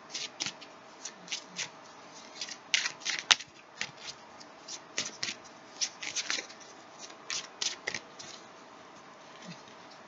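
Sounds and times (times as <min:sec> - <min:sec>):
cards being shuffled: 0:00.1 - 0:08.4.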